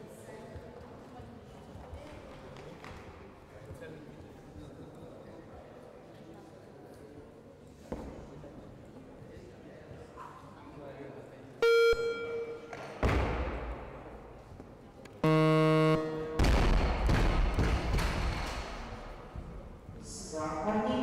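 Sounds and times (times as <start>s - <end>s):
buzzer: 11.6s - 12.8s, 15.2s - 16.9s
short electronic beep: 11.6s - 12.9s, 15.2s - 16.4s.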